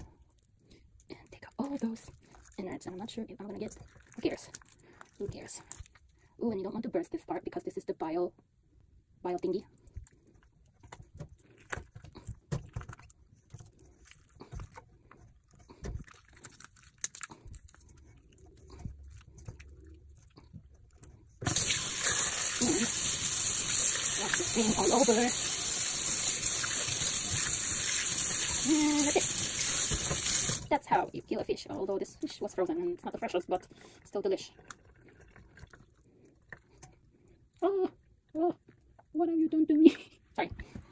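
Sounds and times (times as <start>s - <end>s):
faint wet clicks: 0.0s - 6.4s, 9.4s - 21.4s, 33.6s - 39.2s
tap water running into sink: 21.4s - 30.7s.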